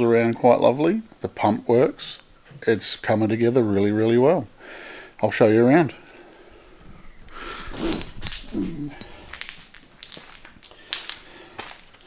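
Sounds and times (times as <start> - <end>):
footsteps on concrete: 7.3 - 12.0.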